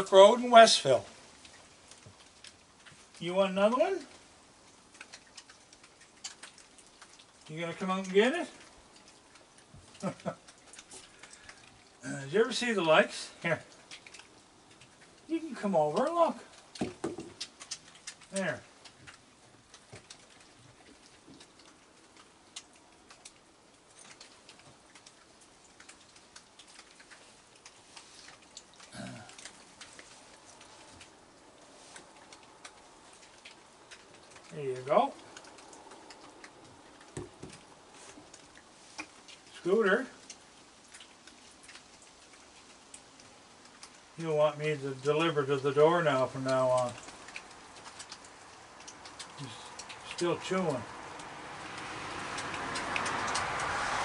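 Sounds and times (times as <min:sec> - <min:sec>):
raccoons crunching kibble: 0:00.0 - 0:54.0.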